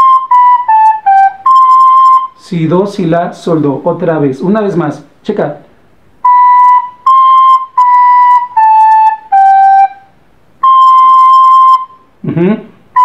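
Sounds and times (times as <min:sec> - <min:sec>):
recorder playing slow notes: 0:00.0 - 0:02.4, 0:06.2 - 0:13.0.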